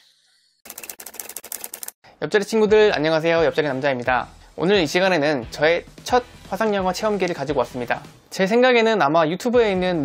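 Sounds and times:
fast clatter of sharp clicks: 0:00.7 - 0:02.0.

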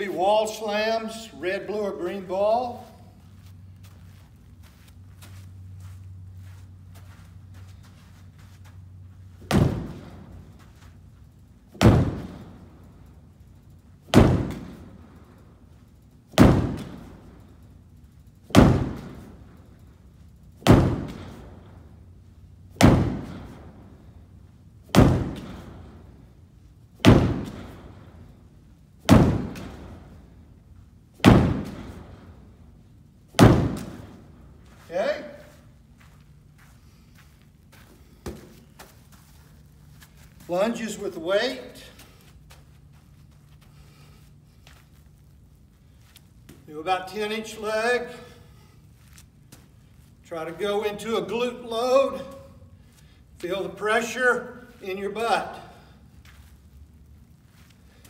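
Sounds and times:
ball slamming against wooden wall: 0:09.4 - 0:10.3, 0:11.8 - 0:12.4, 0:14.1 - 0:14.8, 0:16.3 - 0:17.0, 0:18.5 - 0:19.2, 0:20.6 - 0:21.3, 0:22.8 - 0:23.6, 0:24.9 - 0:25.7, 0:27.0 - 0:27.8, 0:29.0 - 0:30.0, 0:31.2 - 0:32.1, 0:33.3 - 0:34.2.

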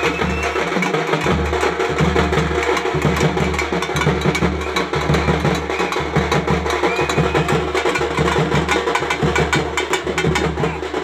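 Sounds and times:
fast stick drumming: 0:00.0 - 0:11.0.

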